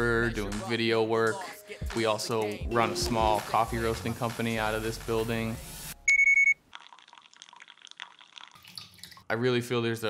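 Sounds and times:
kitchen scale beep: 6.1s - 6.6s
water trickling onto coffee grounds: 6.7s - 9.3s.

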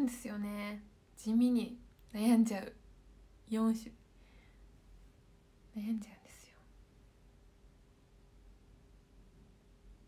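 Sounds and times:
woman speaking a syllable: 0.0s - 2.8s, 3.5s - 3.9s.

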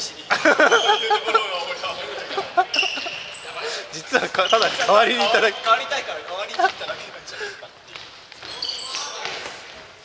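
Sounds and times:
distant voices of players: 0.0s - 10.0s
short high squeaks: 2.7s - 3.6s, 8.2s - 9.2s.

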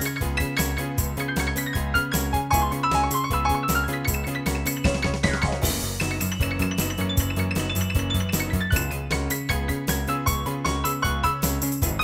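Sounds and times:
drum rhythm: 0.0s - 12.0s
organ melody over bass notes: 0.0s - 12.0s.

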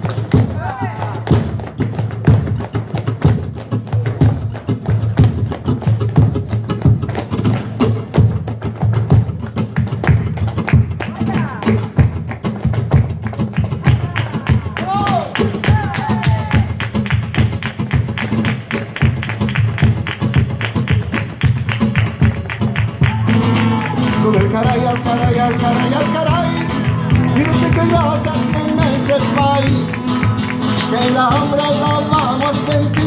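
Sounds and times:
flamenco music: 0.0s - 33.0s.

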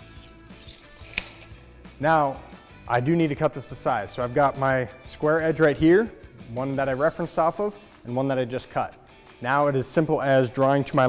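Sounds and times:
tape measure blade retracting: 0.0s - 1.6s
tape measure snapping shut: 0.0s - 1.6s
soft background music: 0.0s - 11.0s.

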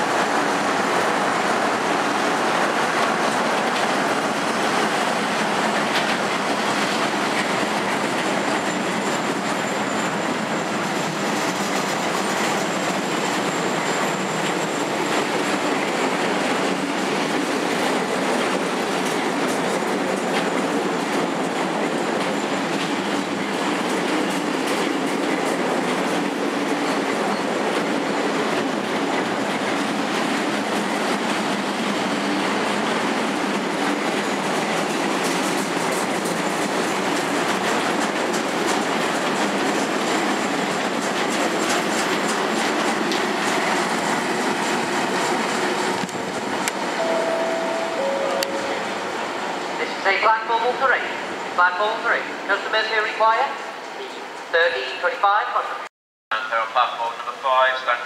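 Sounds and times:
train wheels clattering over rail joints: 0.0s - 46.8s
high wheel squeal: 12.5s - 15.7s.

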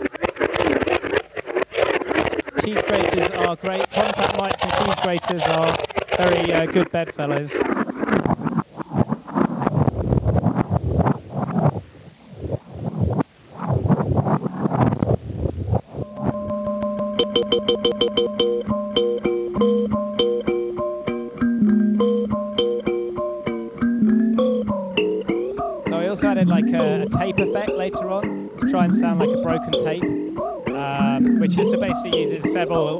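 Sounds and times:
cheese grater scraping with glitch effect: 0.0s - 11.8s
kalimba notes stuttering: 1.8s - 7.8s, 16.0s - 32.9s.

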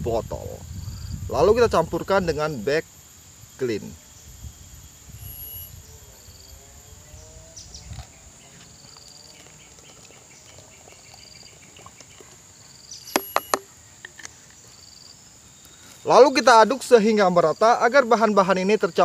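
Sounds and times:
insects: 0.0s - 19.0s
birds chirping: 5.2s - 17.0s.

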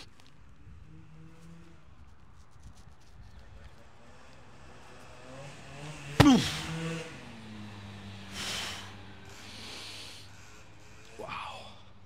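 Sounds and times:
heavy exhales: 6.2s - 6.8s, 8.3s - 10.4s
man grunting: 6.2s - 6.8s.

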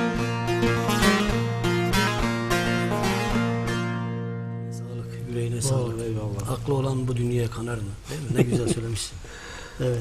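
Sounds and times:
plucked saz melody: 0.0s - 6.8s.

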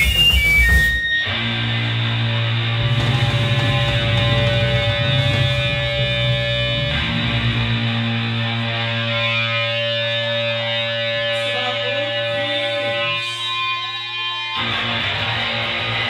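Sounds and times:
distorted electric guitar ringing: 0.0s - 16.0s
wavering amp feedback tones: 0.0s - 16.0s.

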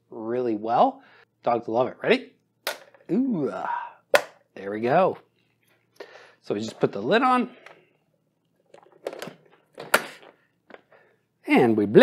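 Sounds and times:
plastic lid clattering into place: 8.7s - 10.3s.

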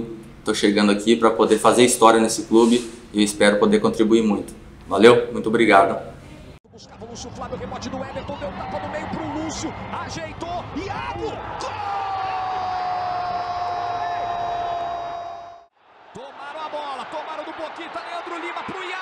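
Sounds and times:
stadium background noise: 6.2s - 14.9s, 15.8s - 19.0s
commentator calling the play: 6.7s - 12.0s, 16.1s - 19.0s
long goal cry: 7.9s - 19.0s.

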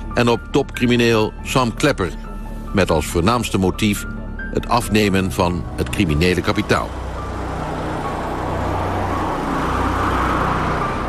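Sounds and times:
vehicle passing by: 5.9s - 11.0s.

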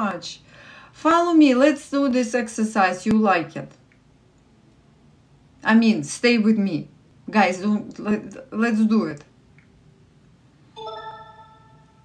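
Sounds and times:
ringing chime: 10.8s - 12.0s.

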